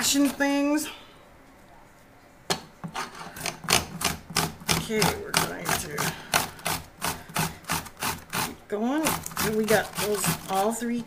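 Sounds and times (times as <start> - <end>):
cucumber rasping on grater: 3.9 - 10.8.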